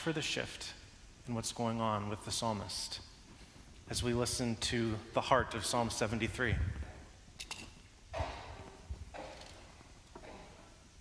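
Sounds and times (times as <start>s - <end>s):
soft rustles: 3.1s - 4.2s.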